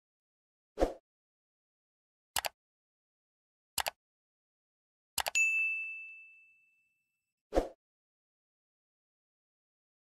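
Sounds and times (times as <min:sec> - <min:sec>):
double mouse click: 0:02.4 - 0:02.6
notification bell ding: 0:05.3 - 0:07.0.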